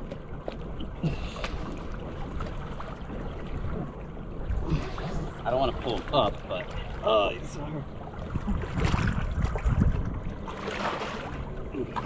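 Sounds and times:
water lapping at waterline: 0.0 - 12.0
wind rumble on microphone: 0.0 - 12.0.

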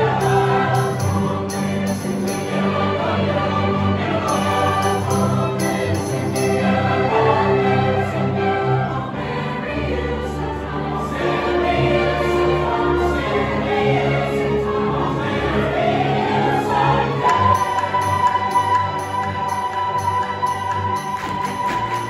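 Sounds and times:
choir singing: 0.0 - 22.0
instrumental accompaniment: 0.0 - 22.0.

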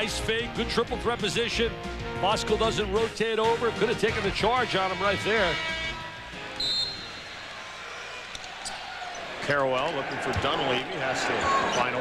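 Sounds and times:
arena crowd noise: 3.0 - 12.0
short high whistle blast: 6.6 - 7.3.

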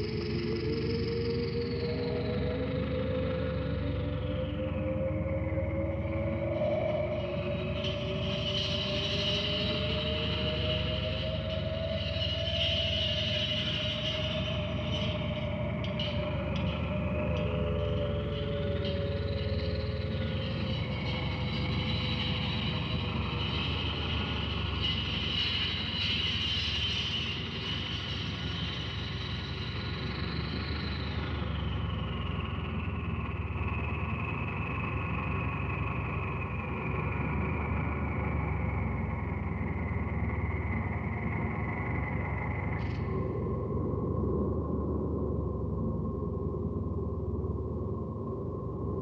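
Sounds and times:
low electronic rumble: 29.8 - 49.0.

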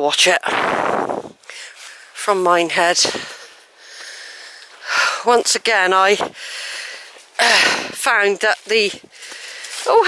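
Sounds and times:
woman breathing: 1.4 - 2.2, 3.0 - 5.3, 6.2 - 8.0, 9.0 - 9.9.

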